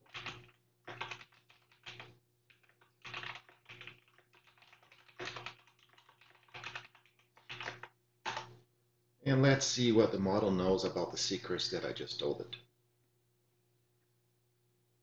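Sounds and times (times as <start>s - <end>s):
keyboard typing: 0.0s - 8.6s.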